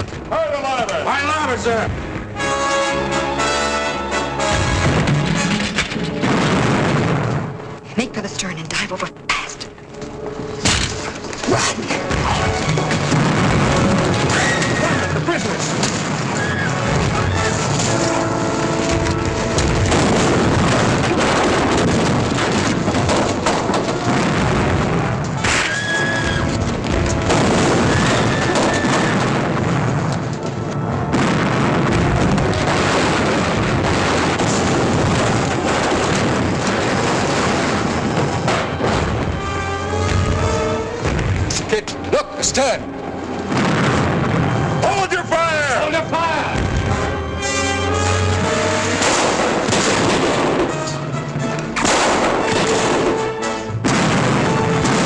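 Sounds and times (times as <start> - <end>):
orchestral score: 1.0 - 34.8, 35.4 - 55.0
cannon booms: 4.4 - 7.8, 12.0 - 42.8, 43.5 - 47.2, 47.9 - 51.0, 51.7 - 55.0.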